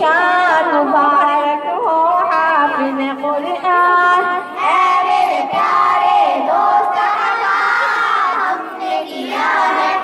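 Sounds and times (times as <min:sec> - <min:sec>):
group singing devotional song: 0:02.6 - 0:10.0.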